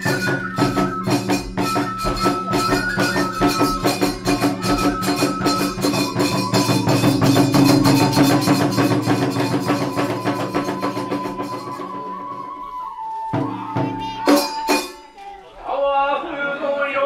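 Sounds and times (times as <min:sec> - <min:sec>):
hand cymbals clashing: 0:00.0 - 0:11.9, 0:14.2 - 0:15.1
drum strokes: 0:00.0 - 0:15.2
held flute note: 0:00.0 - 0:15.4.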